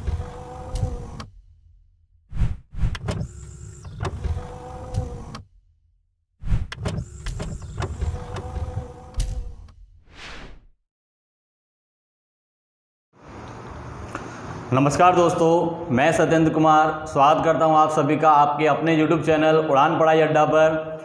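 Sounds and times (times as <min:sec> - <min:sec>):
motorised whirring with clicks: 0:00.0 - 0:01.4, 0:02.9 - 0:05.5, 0:06.7 - 0:09.8.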